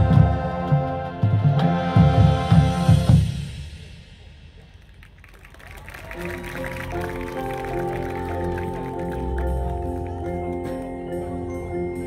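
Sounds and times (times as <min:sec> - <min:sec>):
marching band brass playing: 0:00.0 - 0:04.0, 0:05.8 - 0:11.5.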